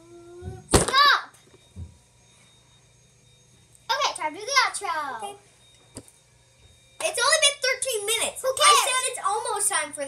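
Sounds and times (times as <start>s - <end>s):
child's high wavering voice: 0.0s - 1.3s, 7.2s - 10.0s.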